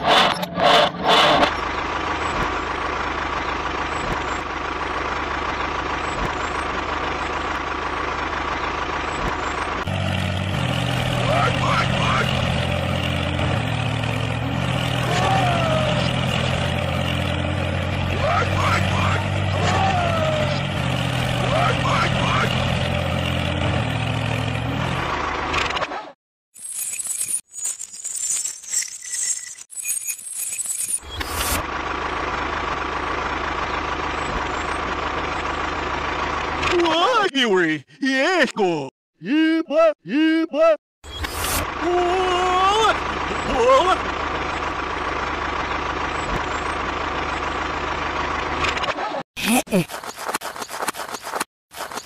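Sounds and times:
tractor engine running: 0.0s - 25.8s, 31.0s - 37.7s, 41.0s - 49.0s.

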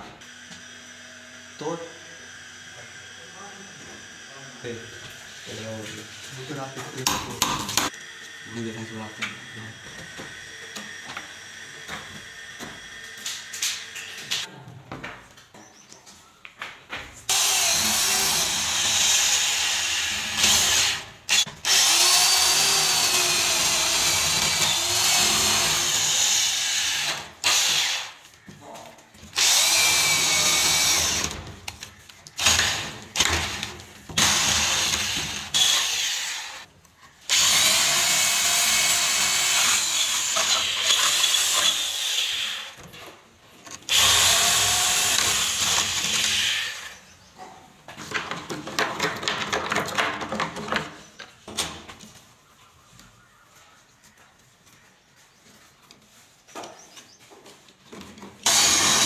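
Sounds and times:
electric drill boring into wood: 0.2s - 14.5s, 17.3s - 28.2s, 29.3s - 36.7s, 37.3s - 42.8s, 43.9s - 47.0s, 58.4s - 59.0s.

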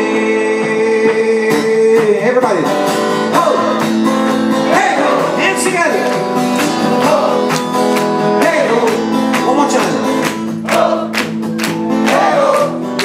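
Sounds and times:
person singing without words: 0.0s - 2.3s, 12.0s - 13.0s
acoustic guitar strumming: 0.0s - 13.0s.

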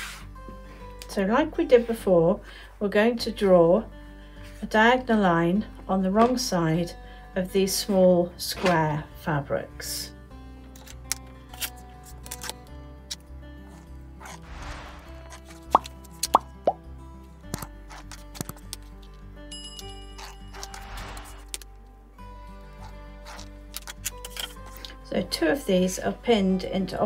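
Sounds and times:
soft background music: 0.0s - 27.0s
sharp pops: 14.4s - 16.8s.

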